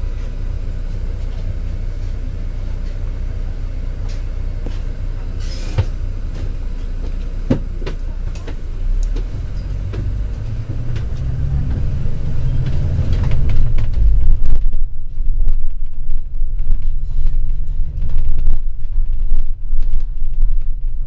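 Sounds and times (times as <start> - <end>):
bus engine rumble and road noise: 0.0 - 21.0
bodywork rattles and knocks: 5.8 - 21.0.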